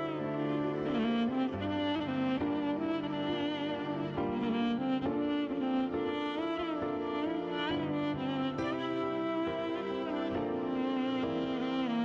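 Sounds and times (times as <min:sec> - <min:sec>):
sustained low backing notes: 0:00.0 - 0:12.0
violin playing sad melody: 0:00.0 - 0:12.0.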